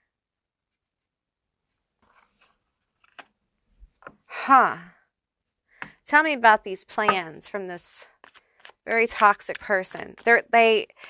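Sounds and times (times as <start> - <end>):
cards rustling: 2.0 - 3.3, 8.1 - 11.0.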